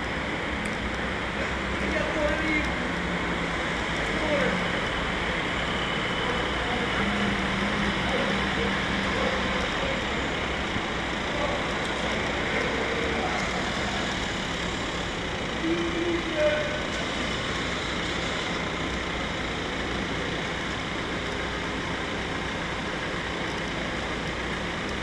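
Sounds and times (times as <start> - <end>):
road traffic noise: 0.0 - 25.0
indistinct voices: 0.3 - 21.9.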